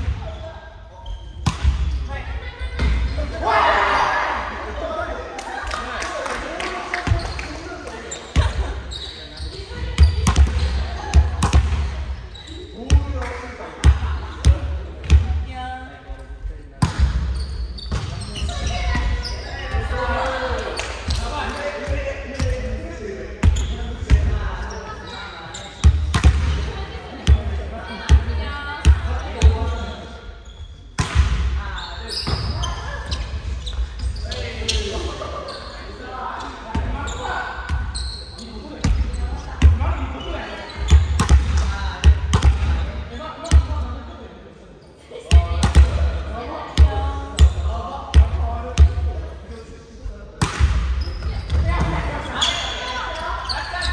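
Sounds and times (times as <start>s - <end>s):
players shouting: 3.2s - 4.8s
hands striking volleyball: 50.4s - 50.8s.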